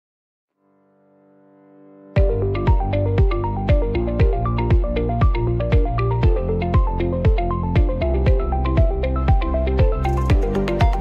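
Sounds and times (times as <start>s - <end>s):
music beat: 2.2s - 11.0s
sustained low chord: 2.2s - 11.0s.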